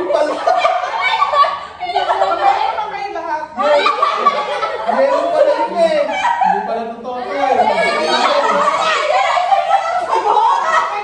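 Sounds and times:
adults laughing and talking: 0.0s - 11.0s.

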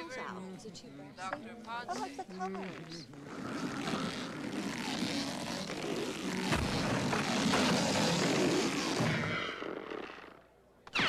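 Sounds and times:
sharp knocks: 6.5s - 8.2s.

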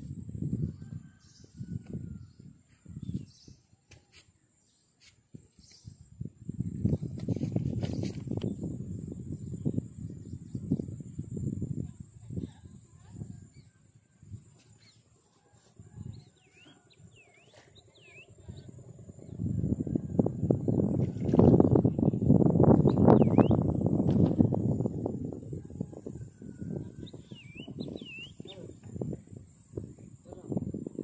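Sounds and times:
small birds chirping: 16.1s - 19.4s, 21.6s - 23.7s, 26.9s - 29.2s.

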